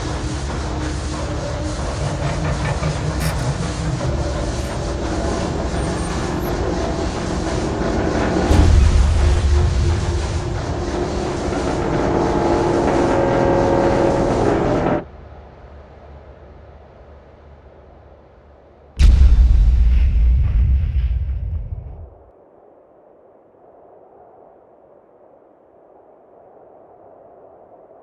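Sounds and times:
steam hiss: 0:00.0 - 0:14.6
machinery clattering: 0:00.0 - 0:15.0
heavy machinery rumble: 0:00.0 - 0:15.1
deep boom: 0:03.2 - 0:13.0, 0:19.0 - 0:22.2.

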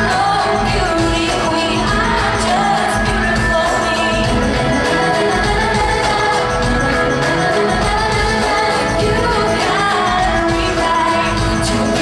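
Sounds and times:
live pop band playing: 0:00.0 - 0:12.0
woman singing: 0:00.0 - 0:12.0.

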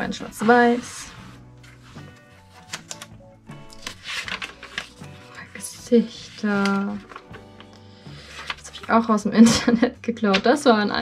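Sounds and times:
paper page turning: 0:00.0 - 0:09.0
soft background music: 0:00.0 - 0:11.0.

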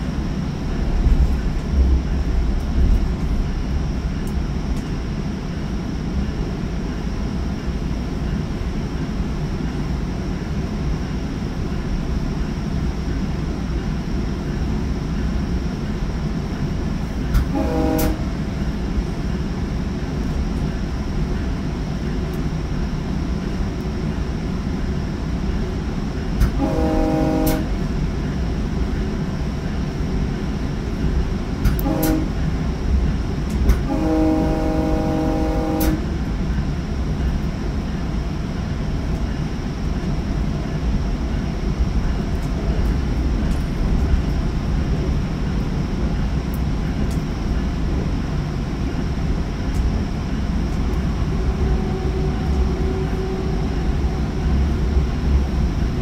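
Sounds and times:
train wheels rumbling on rails: 0:00.0 - 0:56.0
train horn blasts: 0:17.4 - 0:18.4, 0:26.4 - 0:27.8, 0:31.7 - 0:32.5, 0:33.7 - 0:36.1, 0:51.1 - 0:55.0.

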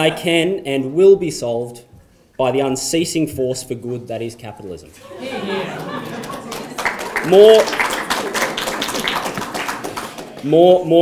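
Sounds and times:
audience clapping: 0:05.2 - 0:10.8.

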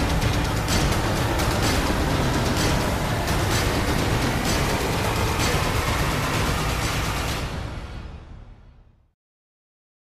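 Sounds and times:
news intro theme music: 0:00.0 - 0:08.7
strong musical hits: 0:00.0 - 0:08.9.

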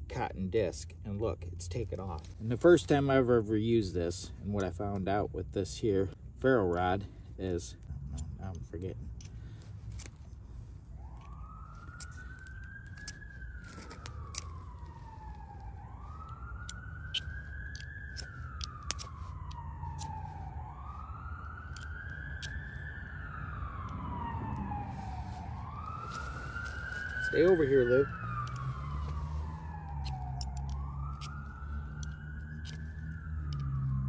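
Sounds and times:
emergency siren wailing: 0:02.1 - 0:34.0.

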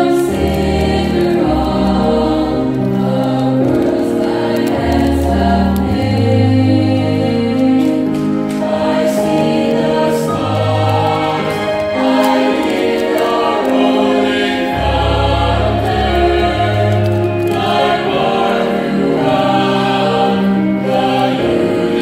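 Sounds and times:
youth choir singing a hymn: 0:00.0 - 0:22.0.

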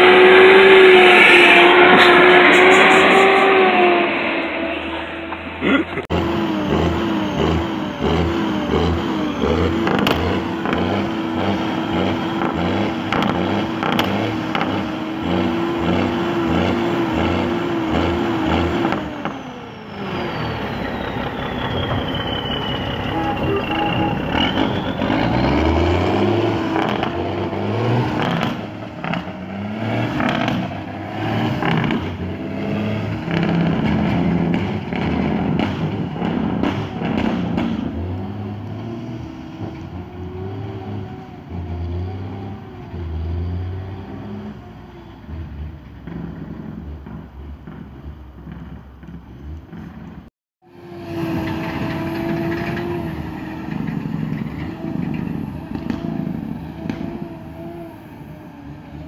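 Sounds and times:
diesel truck engine revving: 0:00.0 - 0:59.0
high engine whine: 0:00.0 - 0:59.0.

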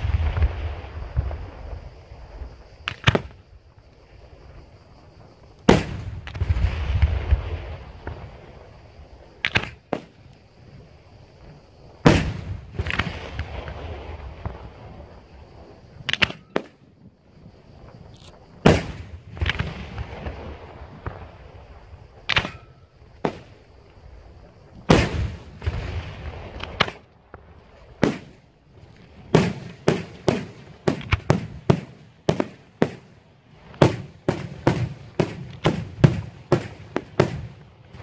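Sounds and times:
fireworks bursting: 0:00.0 - 0:38.0.

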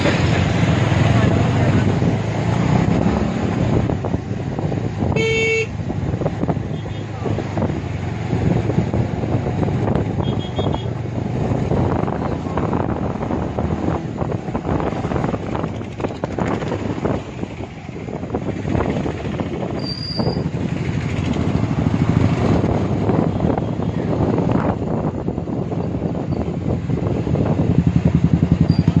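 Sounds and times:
motorbike engine and road noise: 0:00.0 - 0:29.0
wind on microphone: 0:00.0 - 0:29.0.

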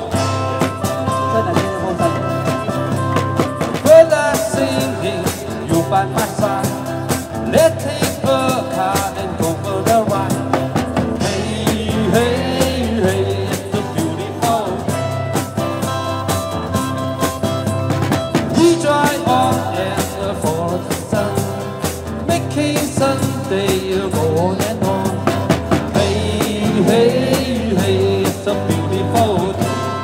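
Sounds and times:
drum kit beat: 0:00.0 - 0:30.0
electric guitars: 0:00.0 - 0:30.0.

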